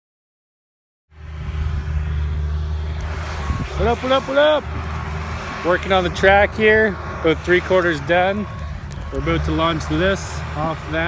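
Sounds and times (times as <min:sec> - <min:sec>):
bulldozer diesel engine rumbling: 0:01.1 - 0:11.0.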